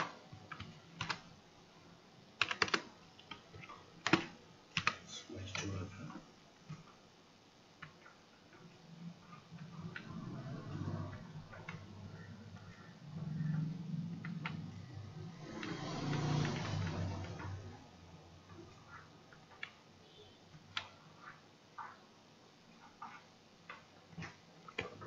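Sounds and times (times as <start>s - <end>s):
keyboard keys clicking: 0.0s - 1.2s, 2.4s - 5.8s, 11.5s - 12.8s, 14.2s - 14.8s.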